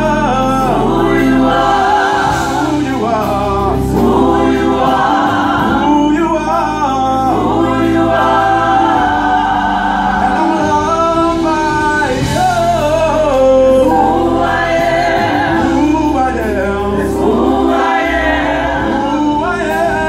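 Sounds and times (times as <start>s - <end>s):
man singing lead: 0.0s - 8.1s, 10.2s - 18.2s, 18.8s - 20.0s
women's choir singing: 0.5s - 6.1s, 7.3s - 10.8s, 13.9s - 15.9s, 17.0s - 19.6s.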